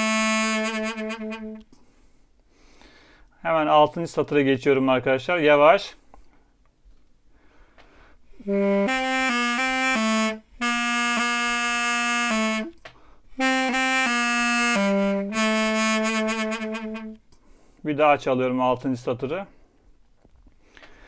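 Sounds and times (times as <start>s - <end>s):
double-reed pipe playing folk tune: 0.0s - 1.6s, 8.3s - 17.2s.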